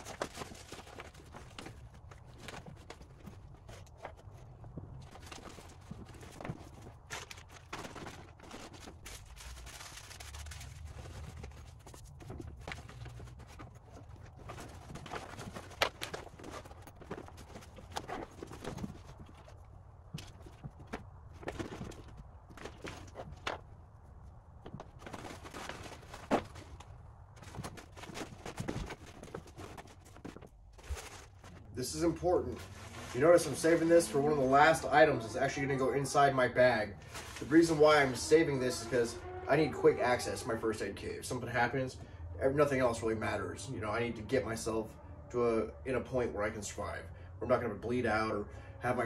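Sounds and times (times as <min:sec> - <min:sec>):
fabric rustling: 0:32.4 - 0:34.2.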